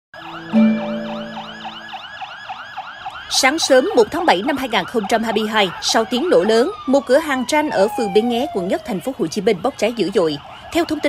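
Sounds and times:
fire truck siren yelping: 0:00.2 - 0:11.0.

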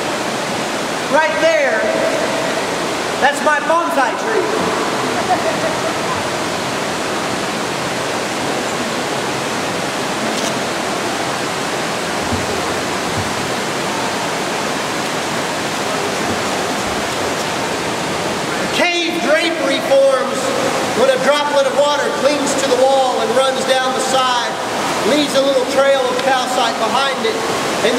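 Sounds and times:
water rushing over dam: 0:00.0 - 0:27.9
person talking: 0:01.1 - 0:02.4, 0:03.2 - 0:06.4.

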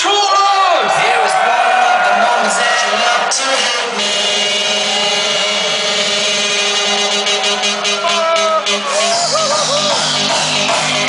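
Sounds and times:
distorted synth chord: 0:02.4 - 0:11.0.

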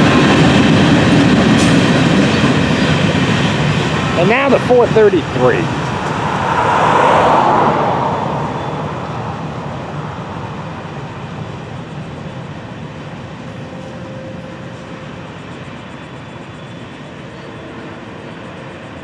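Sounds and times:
train wheels rolling: 0:00.0 - 0:10.5
diesel locomotive engine: 0:00.0 - 0:19.0.

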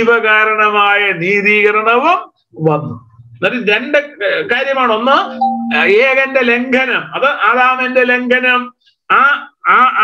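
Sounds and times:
man speaking: 0:04.7 - 0:08.0
steady tone: 0:05.1 - 0:06.6.

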